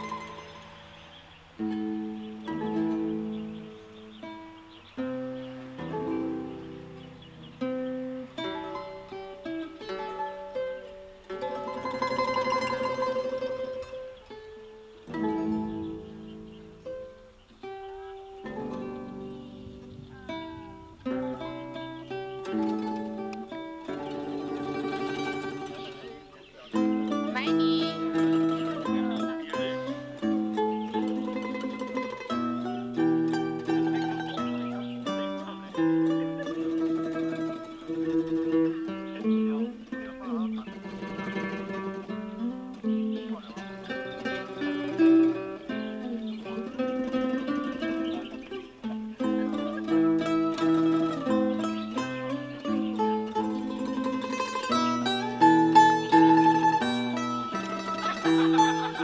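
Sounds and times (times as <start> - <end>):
instrumental background music: 0.0 - 59.0.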